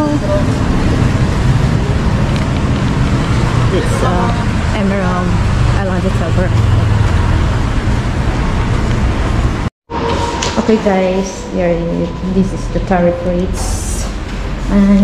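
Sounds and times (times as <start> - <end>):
people talking: 0.0 - 0.7, 3.7 - 6.6, 10.4 - 15.0
road traffic rumble: 0.0 - 15.0.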